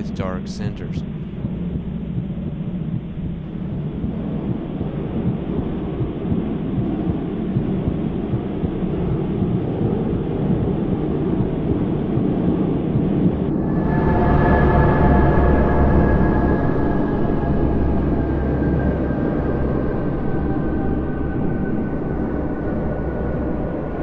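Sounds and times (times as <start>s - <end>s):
low rumbling noise: 0.0s - 24.0s
eerie sustained music tones: 13.5s - 24.0s.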